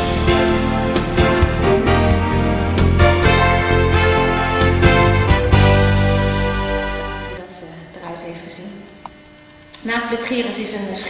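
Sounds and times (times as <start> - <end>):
music: 0.0 - 7.4
electrical mains hum: 6.0 - 11.0
woman speaking: 7.4 - 8.9, 9.8 - 11.0.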